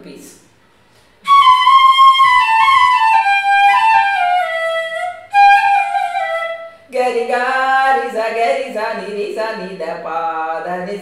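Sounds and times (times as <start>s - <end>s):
bamboo flute melody: 1.2s - 6.8s.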